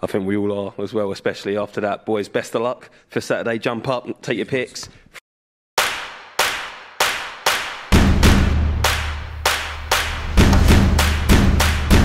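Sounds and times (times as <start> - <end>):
cinematic impact hits: 7.9 - 12.0.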